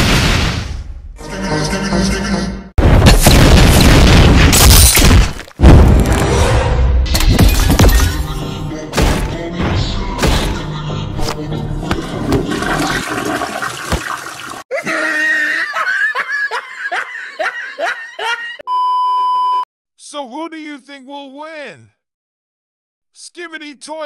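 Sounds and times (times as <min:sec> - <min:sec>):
cartoon music and sound effects: 0:01.2 - 0:02.7.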